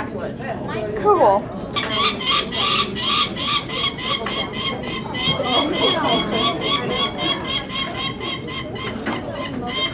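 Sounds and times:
falcon chick calling: 1.9 - 9.9.

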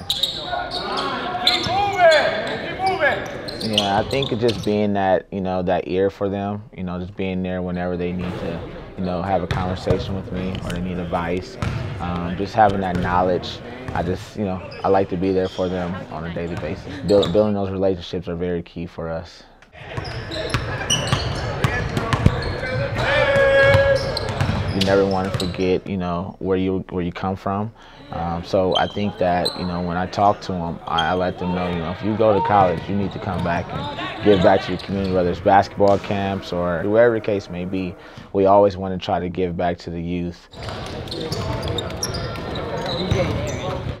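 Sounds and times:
players calling out: 0.0 - 4.9, 8.2 - 17.6, 19.8 - 25.8, 28.0 - 38.2, 40.5 - 44.0
sneaker squeaks: 0.0 - 4.9, 11.6 - 17.5, 19.8 - 25.7, 28.6 - 30.0, 30.9 - 36.0, 40.5 - 44.0
basketball bouncing: 9.5 - 13.3, 20.0 - 25.6.

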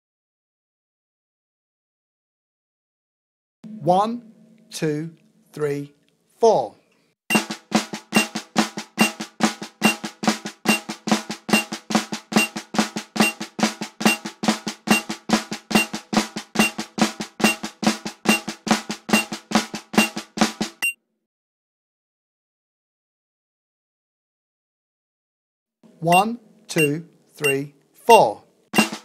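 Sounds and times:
snare drum rudiment: 7.3 - 20.9, 28.8 - 29.0.

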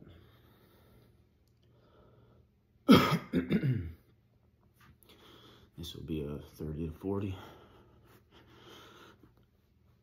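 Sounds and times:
man coughing: 2.8 - 4.1.

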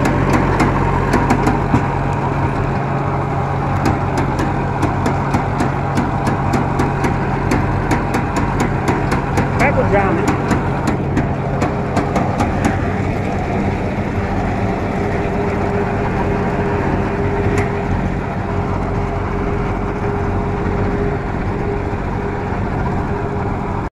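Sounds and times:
seeder rotor churning soil: 0.0 - 23.9
tractor running under load: 0.0 - 23.9.

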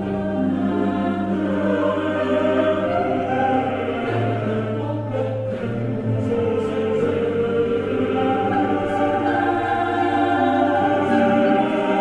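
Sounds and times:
choir holding long notes: 0.0 - 12.0.

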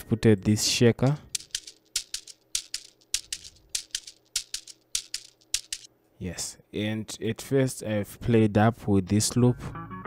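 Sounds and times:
shaker loop beat: 1.3 - 5.9.

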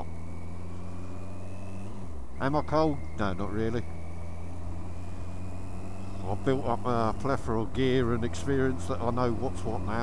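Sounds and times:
motorcycle engine cruising: 0.0 - 10.0
road and wind noise: 0.0 - 10.0.

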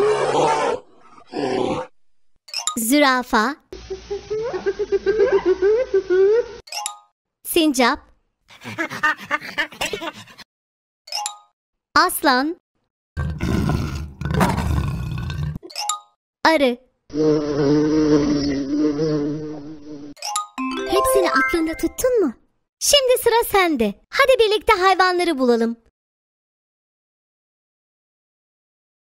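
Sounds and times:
bear roaring: 0.0 - 1.9, 13.2 - 15.6, 17.1 - 20.1
high-pitched rising chirp: 20.6 - 22.2.

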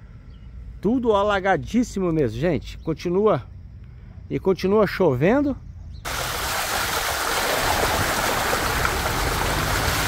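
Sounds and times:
car tyre splashing through floodwater: 6.1 - 10.0.

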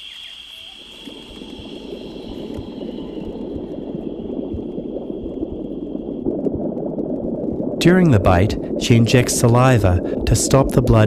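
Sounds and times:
rushing gurgling liquid: 0.0 - 11.0.

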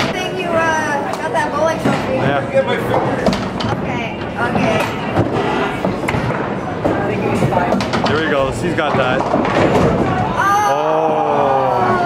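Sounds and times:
bowling balls and pins clattering: 2.8 - 10.4.

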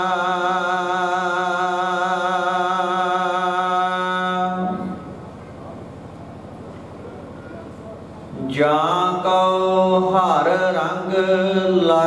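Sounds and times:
man singing hymn over sound system: 0.0 - 5.1, 8.3 - 12.0.

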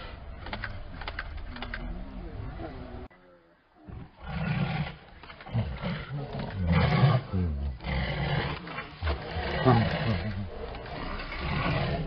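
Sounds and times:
tiger roaring: 3.9 - 12.0.

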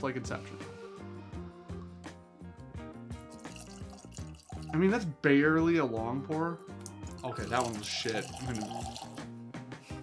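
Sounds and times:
background music: 0.0 - 10.0
liquid trickling into glass: 3.3 - 4.8, 6.8 - 9.2.

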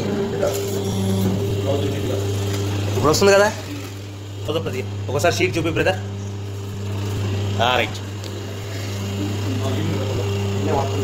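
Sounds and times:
hydraulic power pack humming: 0.0 - 11.0.

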